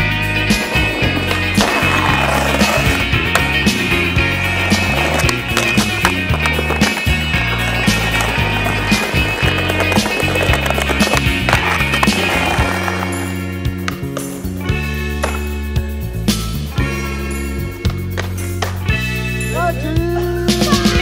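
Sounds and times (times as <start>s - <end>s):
skateboard wheels rolling on concrete: 0.0s - 19.4s
song playing: 0.0s - 21.0s
skateboard clacks: 0.5s - 13.2s.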